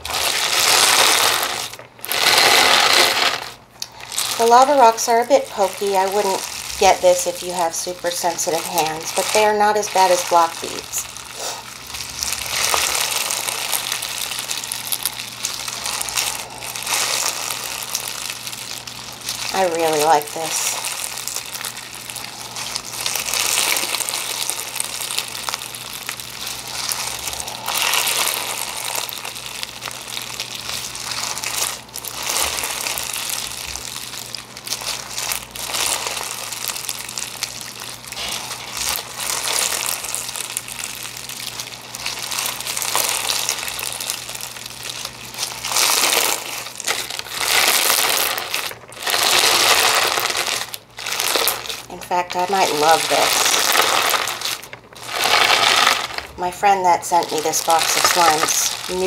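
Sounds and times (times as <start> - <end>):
slime crunching and crackling: 0.0 - 59.0.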